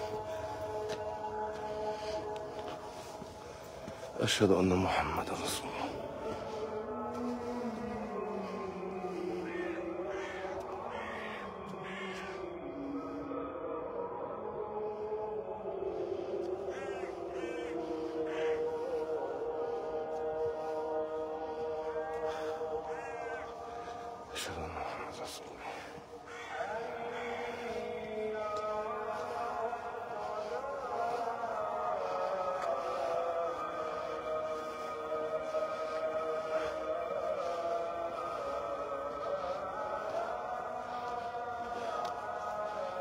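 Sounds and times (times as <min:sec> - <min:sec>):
call to prayer over loudspeakers: 0:00.0 - 0:43.0.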